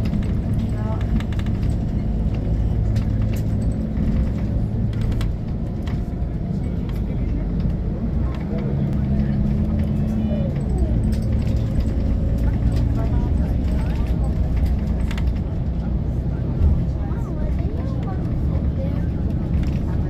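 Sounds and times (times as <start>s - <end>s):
bus engine drone: 0.0s - 20.0s
light rattles and clicks: 0.0s - 20.0s
road rumble: 0.0s - 20.0s.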